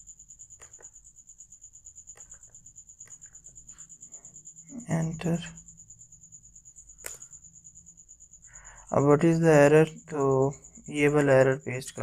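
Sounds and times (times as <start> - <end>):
man speaking: 4.7 - 5.6, 8.9 - 12.0.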